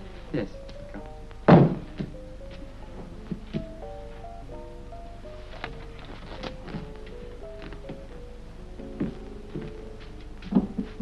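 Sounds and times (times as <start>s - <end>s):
background music: 0.0s - 11.0s
heavy object thudding on floor: 1.5s - 2.2s.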